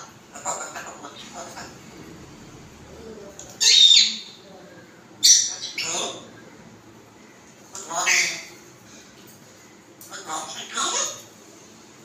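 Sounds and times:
parrot high-pitched calls: 0:03.6 - 0:04.4, 0:05.2 - 0:06.2.

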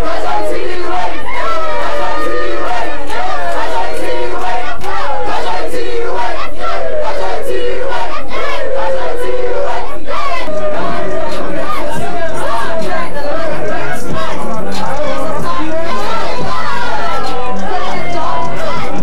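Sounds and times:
crowd shouting: 0:00.0 - 0:19.0.

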